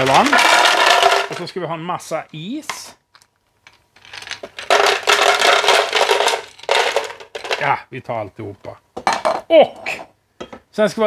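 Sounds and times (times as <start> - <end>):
ice cubes clattering into blender jar: 0.0 - 1.5, 4.0 - 7.7.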